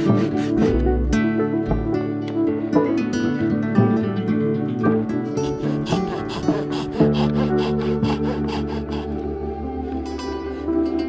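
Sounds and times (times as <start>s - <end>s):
hand saw cutting bark: 0.0s - 0.8s, 5.4s - 9.2s
plucked-string background music: 0.0s - 11.0s.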